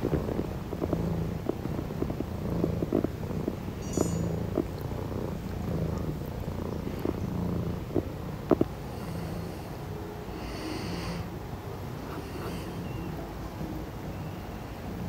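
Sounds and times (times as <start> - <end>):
kitten purring: 0.0 - 15.0.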